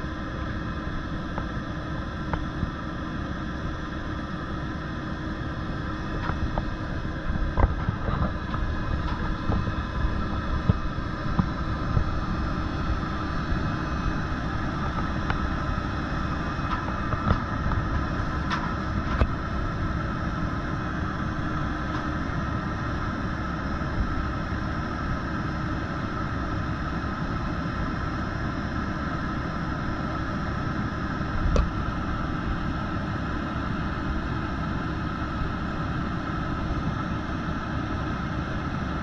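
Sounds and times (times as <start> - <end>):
diesel engine idling: 0.0 - 39.0
hydraulic whine: 0.0 - 39.0.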